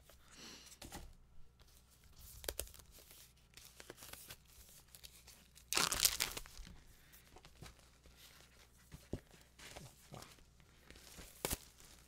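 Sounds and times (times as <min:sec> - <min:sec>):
plastic wrap crinkling: 0:02.3 - 0:06.8
plastic wrap tearing: 0:05.6 - 0:06.7.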